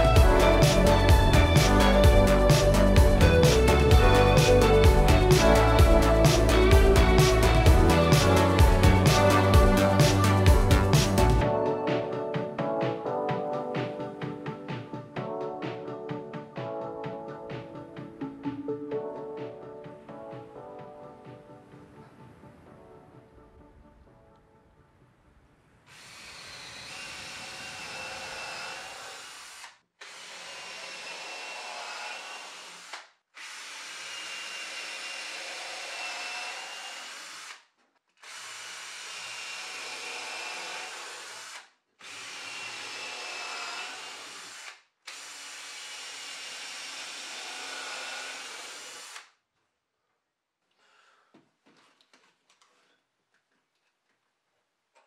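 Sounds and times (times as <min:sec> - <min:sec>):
cordless drill running: 0:25.9 - 0:37.6, 0:38.2 - 0:49.3.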